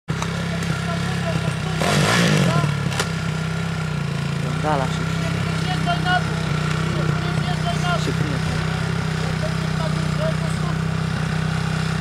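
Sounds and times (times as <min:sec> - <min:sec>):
dirt bike engine revving: 0:00.1 - 0:12.0.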